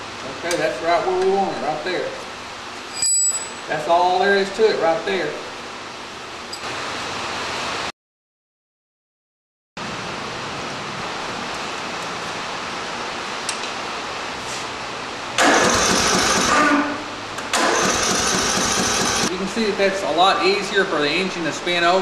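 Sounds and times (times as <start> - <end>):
electric starter cranking engine: 15.4 - 19.3.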